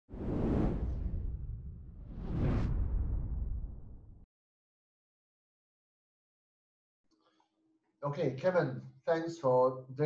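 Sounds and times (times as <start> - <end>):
low rumble: 0.1 - 4.3.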